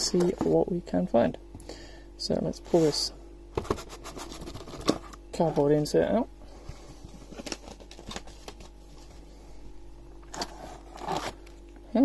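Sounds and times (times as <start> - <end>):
cardboard scraping and tapping: 3.6 - 5.1.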